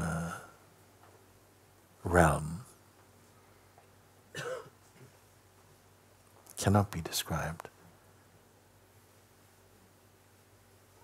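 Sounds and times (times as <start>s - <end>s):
person coughing: 4.3s - 4.8s.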